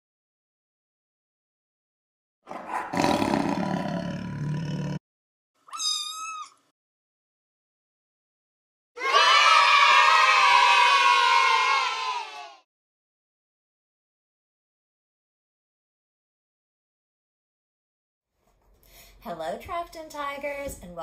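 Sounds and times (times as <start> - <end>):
tiger roar: 2.5 - 5.0
crowd cheering: 9.0 - 12.6.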